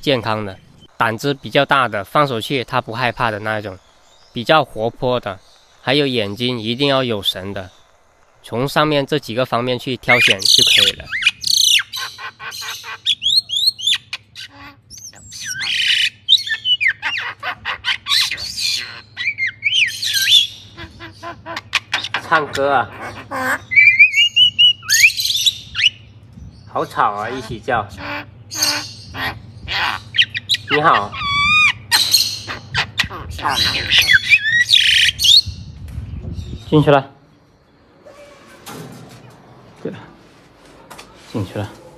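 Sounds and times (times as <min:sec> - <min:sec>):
birds calling: 0:00.0 - 0:41.9.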